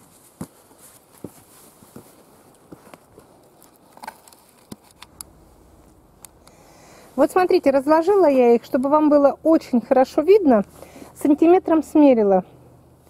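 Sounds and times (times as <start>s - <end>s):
camera handling noise: 2.8s - 5.4s.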